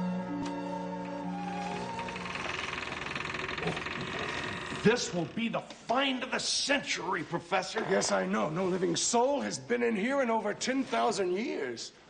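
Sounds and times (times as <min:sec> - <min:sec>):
orchestral string music: 0:00.0 - 0:03.0
rapid rasping grating noise: 0:01.8 - 0:05.5
man speaking: 0:04.8 - 0:12.0.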